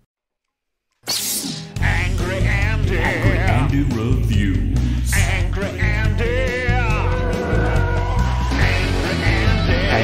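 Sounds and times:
rock music with heavy bass beat: 1.5 - 10.0.

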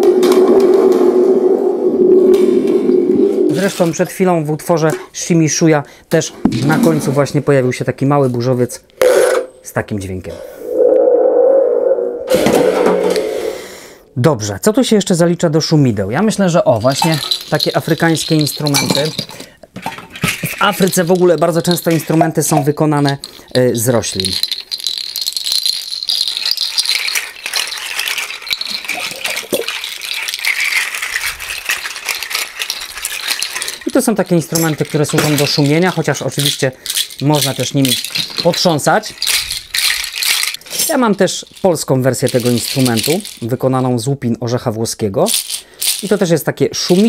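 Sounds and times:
seed pod rattles shaken: 16.2 - 44.0, 45.2 - 47.0.

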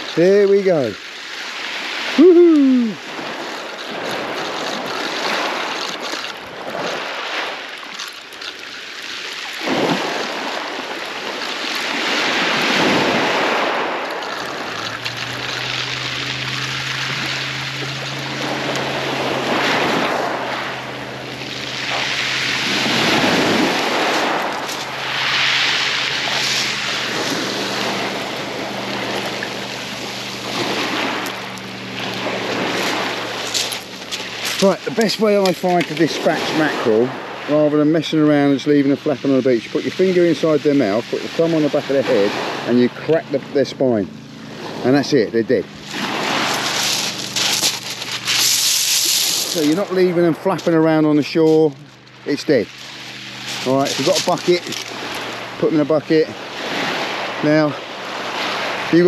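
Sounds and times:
waves washing over shingle: 0.0 - 59.0
steady low hum: 10.5 - 59.0.

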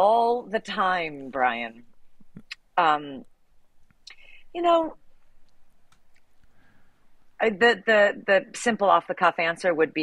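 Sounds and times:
soft clicks: 5.2 - 6.6.

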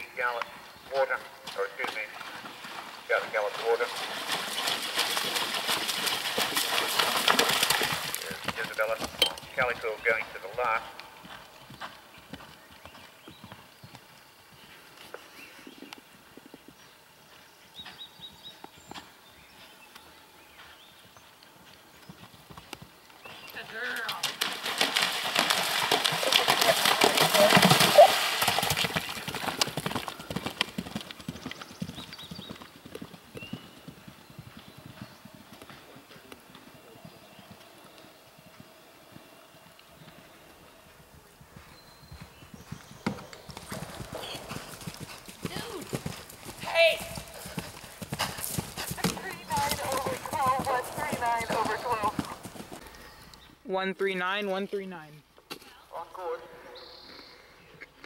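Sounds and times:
horse hoofbeats on turf: 41.0 - 52.8.

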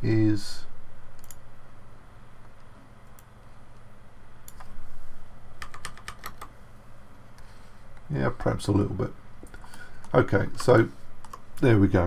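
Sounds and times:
low steady hum: 0.0 - 12.0
keyboard and mouse clicks: 1.2 - 1.4, 4.5 - 4.8, 5.6 - 6.6, 9.4 - 11.7.

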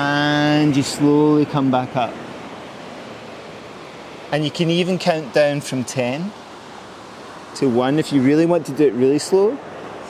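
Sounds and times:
ocean surf breaking: 0.0 - 10.0.

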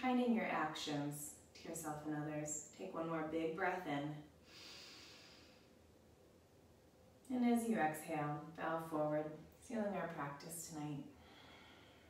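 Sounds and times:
woman breathing in: 4.4 - 5.8, 11.2 - 12.0.

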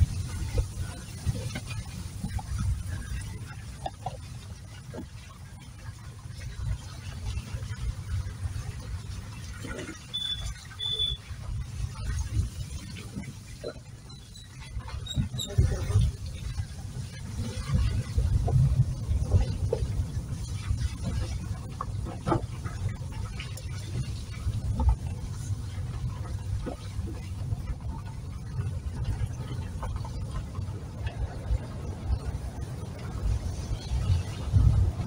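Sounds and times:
car cabin rumble: 0.0 - 35.0
car knocking and rattling over ruts: 0.0 - 35.0.

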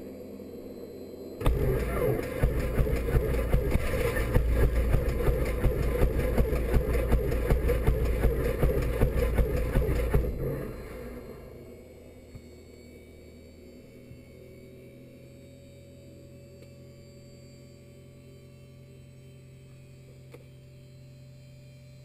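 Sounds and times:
aircraft starter motor cranking: 1.4 - 11.3.

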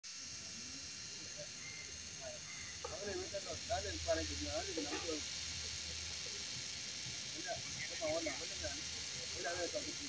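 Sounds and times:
small electric motors whirring: 0.1 - 10.0.

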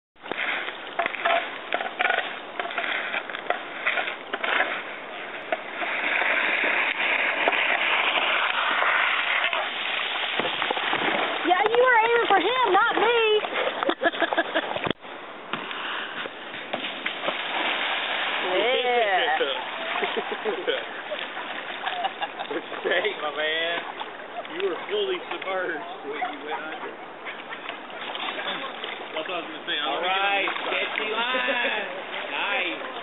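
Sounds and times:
kayak splashing into water: 0.2 - 25.6, 26.3 - 33.0
kayak scraping on concrete: 0.2 - 33.0.

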